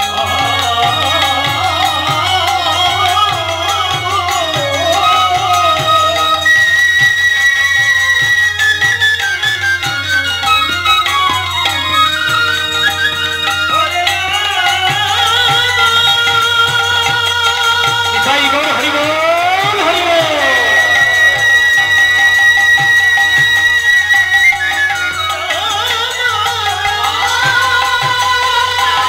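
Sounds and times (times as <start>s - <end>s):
harmonium: 0.0s - 29.0s
instrumental devotional music: 0.0s - 29.0s
high held melody note: 18.3s - 24.6s.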